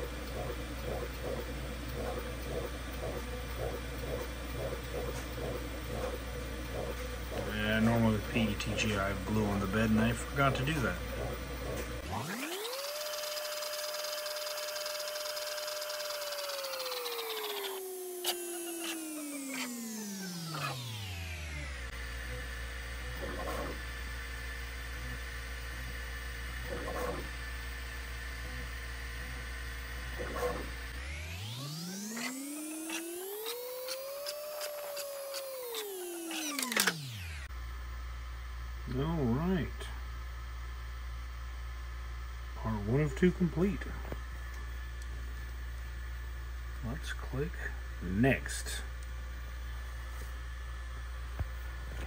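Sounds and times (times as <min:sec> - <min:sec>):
steady low hum: 0:00.0 - 0:35.8, 0:37.2 - 0:52.0
stepper motors whining: 0:00.0 - 0:37.5.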